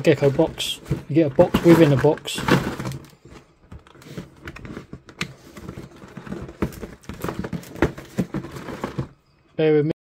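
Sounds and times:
cardboard lid scraping and rubbing: 0:00.0 - 0:09.2.

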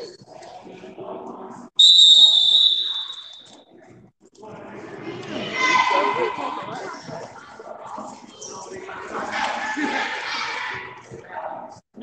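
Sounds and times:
whistle blast: 0:01.8 - 0:03.6
murmur of voices: 0:03.1 - 0:12.0.

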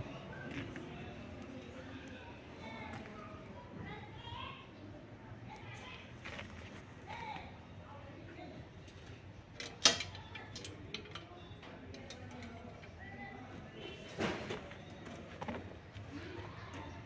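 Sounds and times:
faint background voices: 0:00.0 - 0:17.0.

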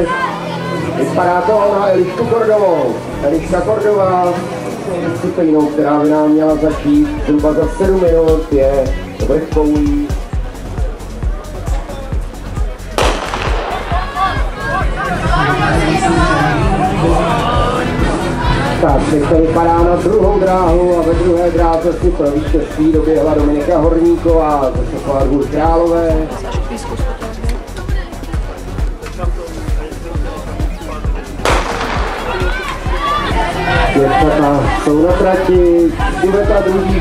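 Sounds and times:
background music with steady beat: 0:00.0 - 0:37.0
music with thumping beat: 0:09.6 - 0:14.7, 0:26.4 - 0:35.2
voices calling out: 0:12.9 - 0:18.8, 0:30.4 - 0:37.0
starter's pistol shot: 0:13.0 - 0:14.1, 0:31.5 - 0:32.5.

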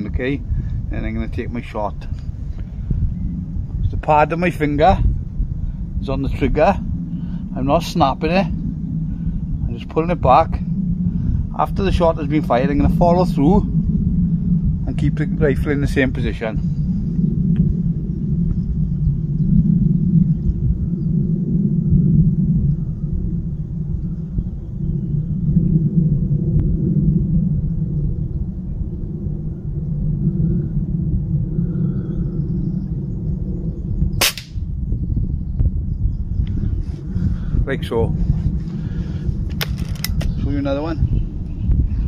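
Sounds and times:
steady low rumble: 0:00.0 - 0:42.0
air rifle shot: 0:34.2 - 0:34.6.

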